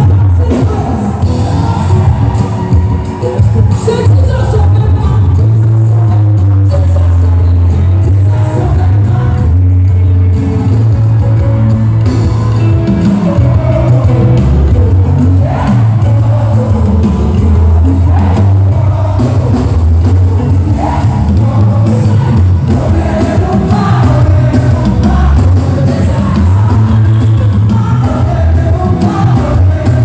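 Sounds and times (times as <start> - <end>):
gospel band playing: 0.0 - 30.0.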